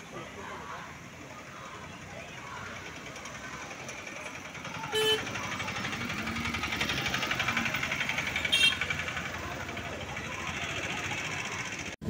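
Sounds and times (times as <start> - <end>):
auto-rickshaw engine rattling: 0.0 - 12.0
vehicle horn beeps: 4.9 - 5.4, 8.4 - 9.0.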